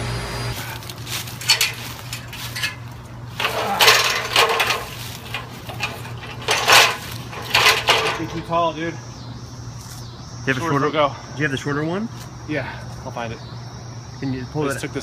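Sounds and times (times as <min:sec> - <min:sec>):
metal ladder clanking and rattling: 0:00.6 - 0:08.6.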